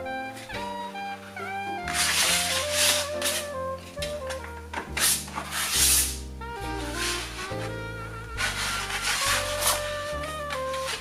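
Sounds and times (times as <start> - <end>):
background music: 0.0 - 11.0
palette knives scraping paint: 1.8 - 3.5, 4.9 - 6.2, 6.8 - 11.0.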